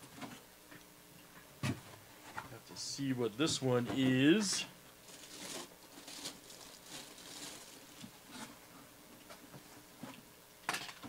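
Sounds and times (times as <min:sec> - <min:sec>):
plastic bag crinkling: 0:05.0 - 0:08.5.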